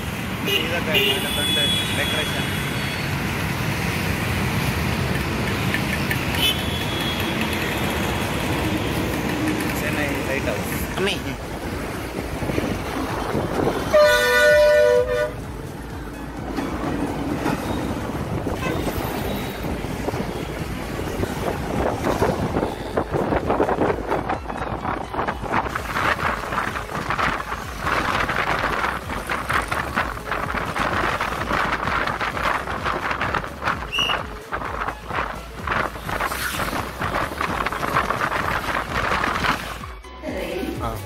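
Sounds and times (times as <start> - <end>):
bus ride noise: 0.0 - 41.0
two-note vehicle horn blast: 13.9 - 15.4.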